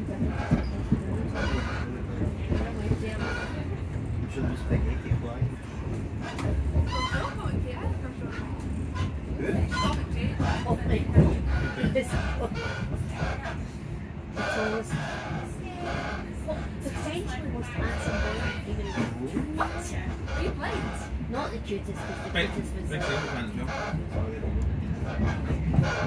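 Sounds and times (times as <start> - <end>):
passengers talking: 0.0 - 26.0
train rumbling: 0.0 - 26.0.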